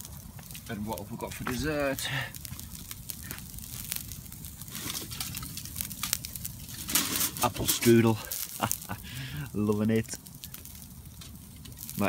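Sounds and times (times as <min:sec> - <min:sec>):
aluminium foil crinkle: 0:00.0 - 0:12.0
campfire crackling and popping: 0:00.0 - 0:12.0
steady low rumble: 0:00.0 - 0:12.0.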